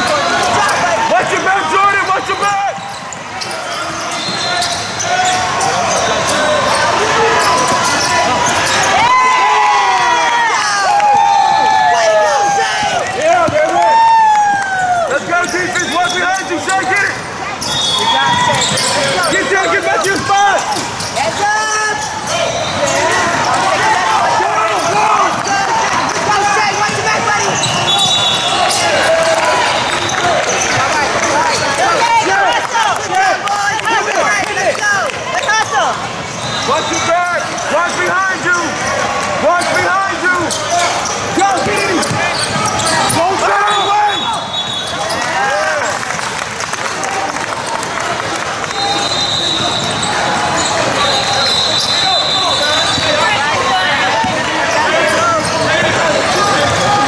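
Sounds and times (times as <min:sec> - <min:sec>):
players and spectators shouting: 0:00.0 - 0:57.0.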